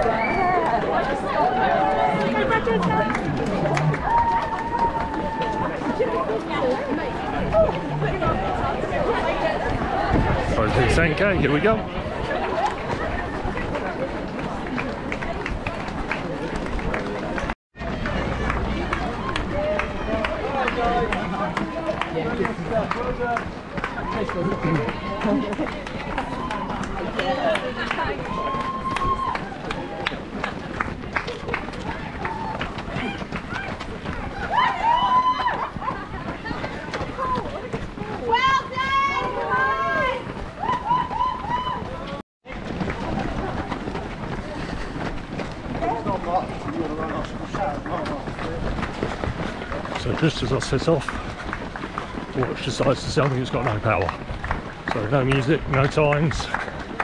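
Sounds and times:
people talking and calling out: 0.0s - 57.0s
runners' footsteps on tarmac: 0.0s - 57.0s.

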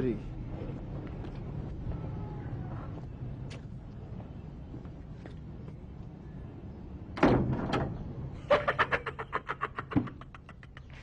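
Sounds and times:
door banging shut: 7.2s - 8.0s
man laughing hard: 8.5s - 11.0s.

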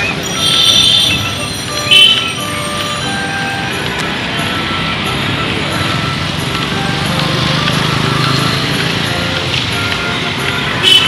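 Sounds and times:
city road traffic: 0.0s - 11.0s
motorcycle engine hum: 0.0s - 11.0s
short horn tones: 0.2s - 3.8s.

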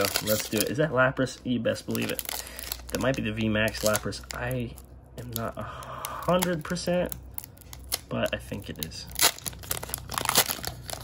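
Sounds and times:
foil wrapper crinkling and tearing: 0.0s - 11.0s.

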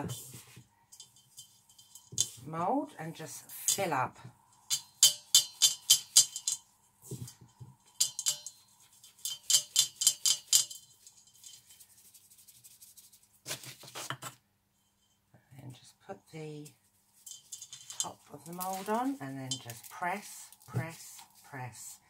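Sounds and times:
mould scraping bath bomb mixture: 0.0s - 4.2s, 8.1s - 14.4s, 17.2s - 21.8s
soft rustle: 0.0s - 4.8s, 5.7s - 22.0s.

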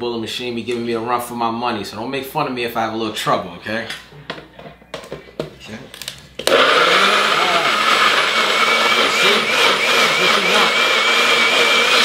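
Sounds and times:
blender motor whining: 6.4s - 12.0s.

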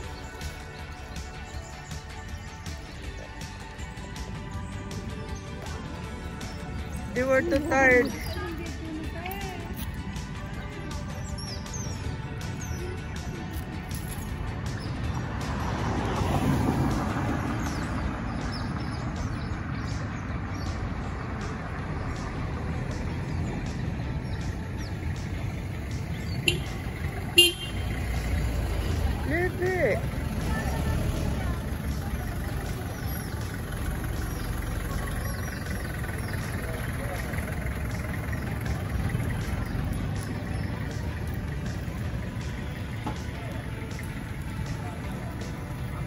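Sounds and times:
small truck engine rumble: 0.0s - 46.0s.

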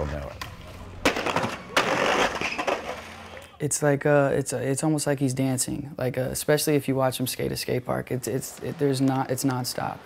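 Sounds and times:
skateboard wheels rolling on concrete: 0.0s - 3.6s, 7.3s - 10.0s
skateboard clack: 0.2s - 3.6s
skateboard hard impact: 0.4s - 3.4s.

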